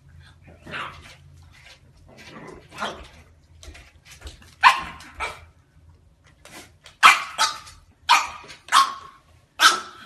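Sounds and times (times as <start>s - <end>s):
puppy barking: 4.6s - 5.5s, 7.0s - 10.0s.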